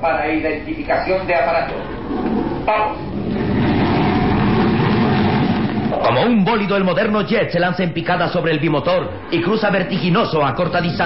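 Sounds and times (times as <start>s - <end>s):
jet engine rush: 0.7s - 6.9s.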